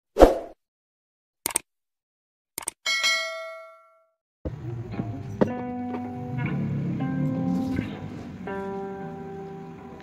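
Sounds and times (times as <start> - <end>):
notification bell ding: 2.9 - 4.0
guitar music: 4.5 - 10.0.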